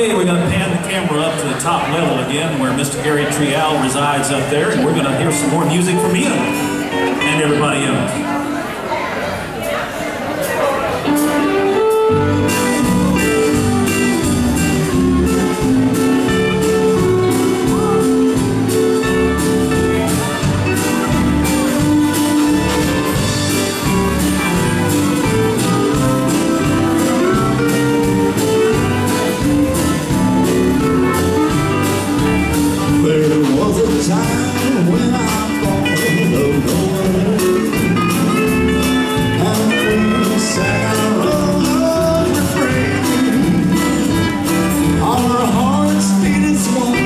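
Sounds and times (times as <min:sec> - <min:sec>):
live country band playing: 0:00.0 - 0:47.0.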